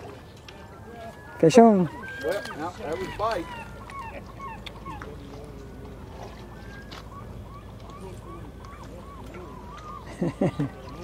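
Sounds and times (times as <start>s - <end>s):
faint bird calls: 0.0s - 11.0s
river water rumbling: 0.0s - 11.0s
wind: 0.0s - 11.0s.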